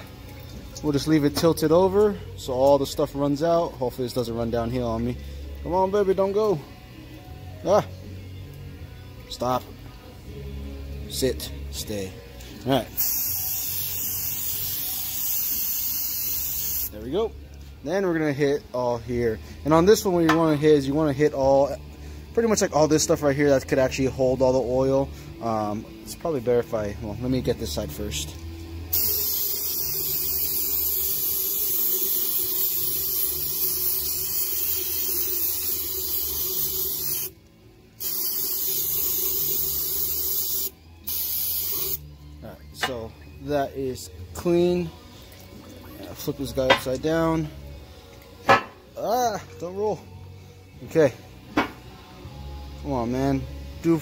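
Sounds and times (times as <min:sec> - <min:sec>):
aerosol spray hissing: 0:13.0 - 0:17.0, 0:28.9 - 0:37.3, 0:38.0 - 0:42.0.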